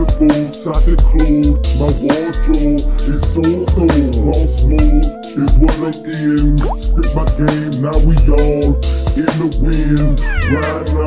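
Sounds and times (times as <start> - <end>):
hip hop beat: 0.0 - 11.0.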